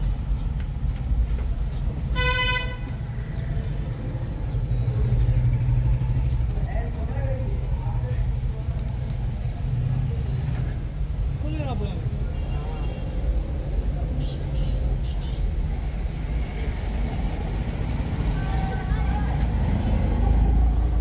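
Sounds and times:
motorbike and rickshaw engines rumbling: 0.0 - 21.0
vehicle horn toot: 2.1 - 3.0.

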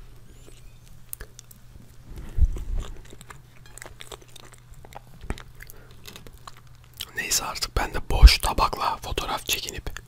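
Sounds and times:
chewing biscuit cake: 0.1 - 10.0.

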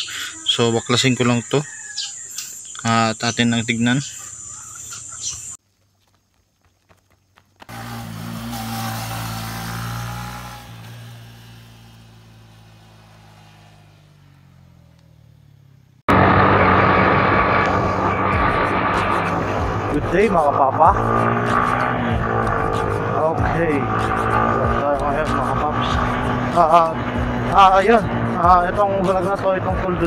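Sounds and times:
motorcycle engine running: 7.6 - 30.0
intro sting with low drone: 16.1 - 30.0.

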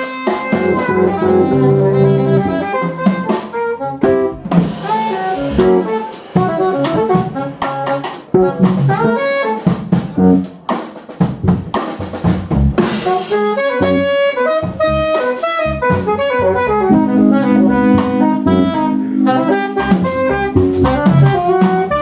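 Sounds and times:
alto saxophone runs: 0.0 - 9.7, 13.0 - 22.0
electric keyboards: 0.0 - 10.6, 12.8 - 22.0
drum kit: 0.0 - 22.0.

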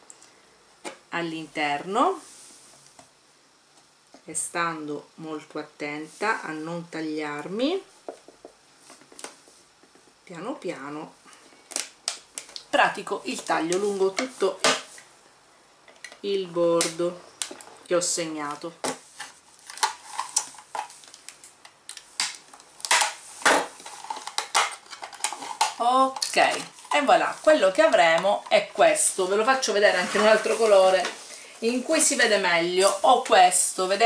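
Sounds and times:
plastic bottle clicking and crackling: 11.7 - 12.7, 19.6 - 26.9
plastic clicking and crackling: 11.7 - 12.7.

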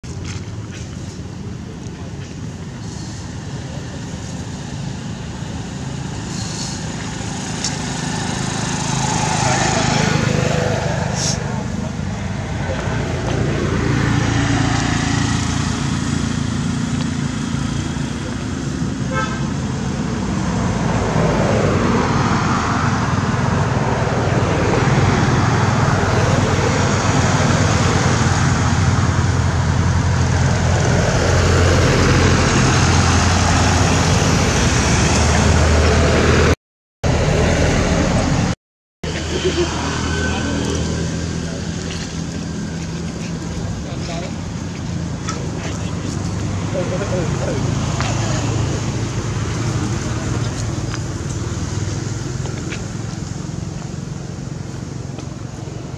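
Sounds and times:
low engine hum: 0.0 - 55.9
road traffic passing: 0.0 - 55.9.

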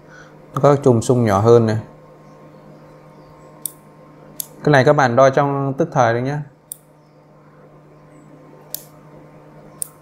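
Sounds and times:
sharp click: 3.6 - 3.8, 4.4 - 4.6, 6.7 - 6.9, 8.7 - 9.0, 9.8 - 10.0.

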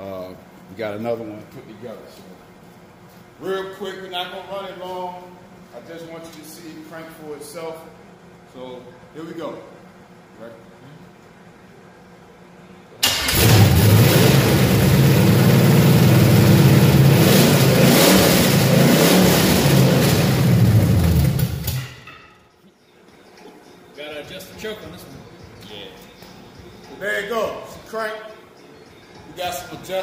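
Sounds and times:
loud car engine running: 13.3 - 21.8.

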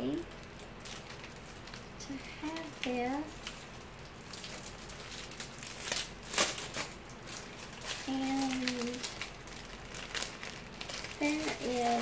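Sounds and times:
plastic packet crinkling: 0.0 - 12.0.

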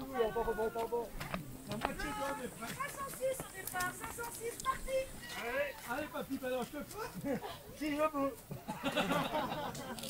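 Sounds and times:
people talking in a crowd: 0.0 - 9.8.

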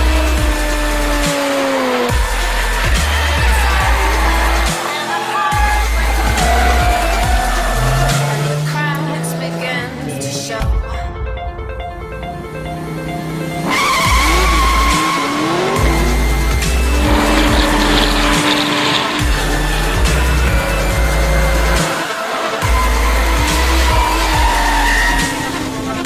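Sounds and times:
tyres squealing: 0.0 - 9.0, 13.6 - 26.0
electronic music with heavy bass: 0.0 - 9.3, 12.4 - 26.0
car engines: 0.0 - 10.7, 11.9 - 26.0.

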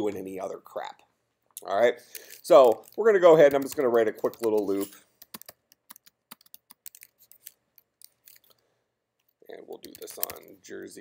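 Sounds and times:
faint keyboard typing: 2.1 - 8.6, 9.2 - 10.9.

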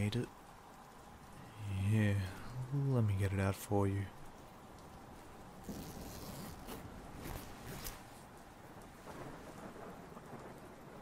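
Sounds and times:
faint rain: 0.0 - 11.0
fabric rustling: 5.6 - 8.4.

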